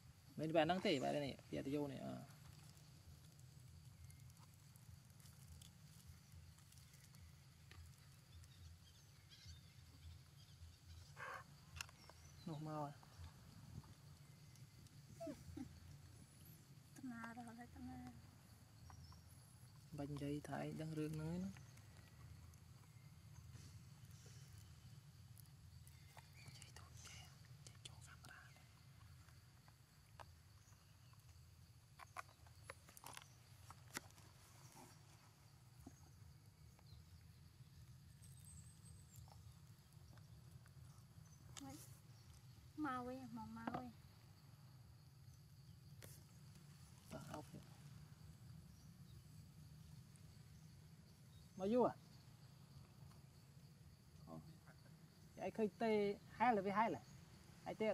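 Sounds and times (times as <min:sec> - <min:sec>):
low outdoor hum: 0:00.0 - 0:57.9
woman speaking: 0:17.0 - 0:18.2, 0:42.8 - 0:44.0.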